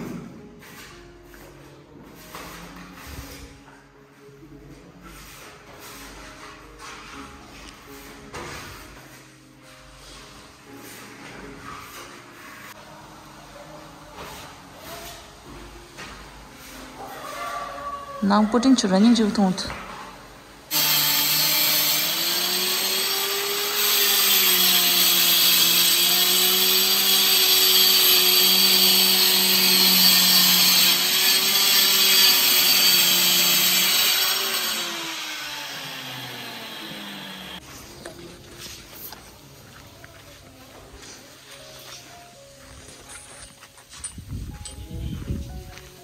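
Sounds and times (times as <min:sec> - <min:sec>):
tile cutter cutting tile: 0:20.7 - 0:37.6.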